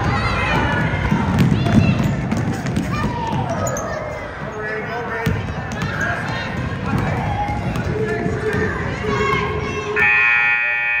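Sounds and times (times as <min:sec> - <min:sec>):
crowd voices: 0:00.0 - 0:11.0
scoreboard horn buzzing: 0:10.0 - 0:11.0.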